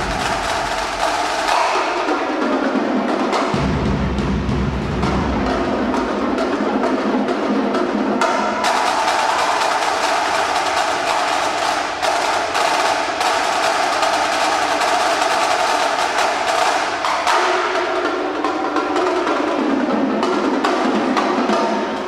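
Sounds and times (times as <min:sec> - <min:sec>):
snare drum rolls: 0:00.0 - 0:22.0
tenor drums: 0:00.0 - 0:22.0.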